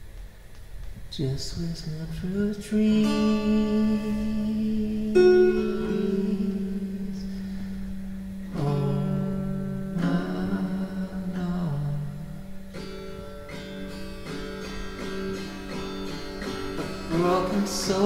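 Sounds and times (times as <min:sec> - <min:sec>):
guitar strumming slow chords: 0:00.0 - 0:18.0.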